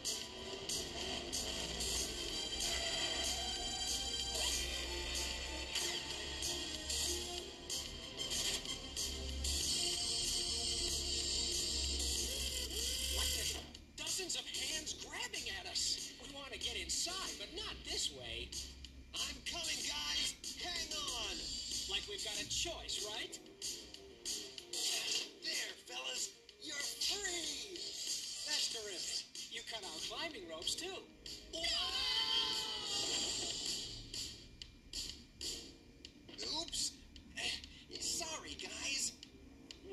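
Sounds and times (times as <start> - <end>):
cartoon character exclaiming: 31.6 - 33.0.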